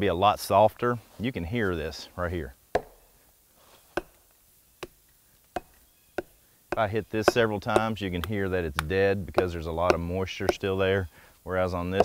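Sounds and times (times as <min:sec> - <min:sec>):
axe knocking on tree trunk: 0:02.7 - 0:03.0, 0:04.8 - 0:10.6.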